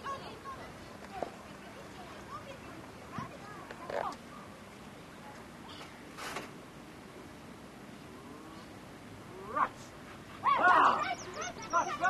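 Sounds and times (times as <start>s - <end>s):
faint children's voices: 0.0s - 6.3s, 10.2s - 12.0s.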